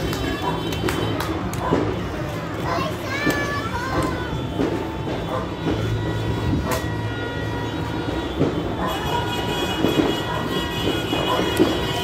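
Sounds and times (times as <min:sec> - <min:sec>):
horns holding steady tones: 0:00.0 - 0:12.0
noisy background: 0:00.0 - 0:12.0.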